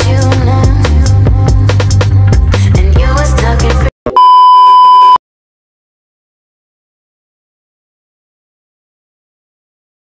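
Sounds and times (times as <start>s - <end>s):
loud electronic test tone beep: 4.1s - 5.2s.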